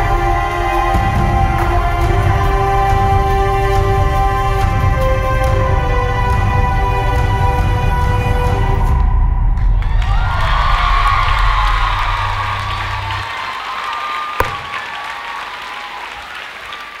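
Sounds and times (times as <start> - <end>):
audience applauding and cheering: 9.9 - 17.0
sharp knock: 14.4 - 14.8.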